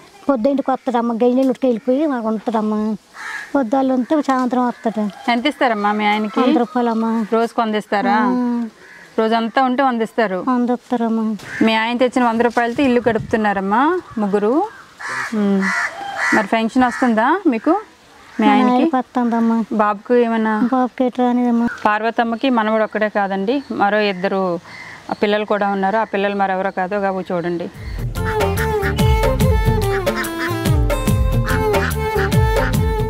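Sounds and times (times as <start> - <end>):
people talking: 0.2 - 3.0, 3.6 - 27.8
woman speaking: 0.2 - 14.7, 15.3 - 27.8
crow cawing: 3.1 - 7.5, 8.7 - 9.8, 11.4 - 11.9, 14.0 - 18.7, 21.6 - 21.9, 24.6 - 25.2, 27.8 - 29.2, 29.8 - 30.7.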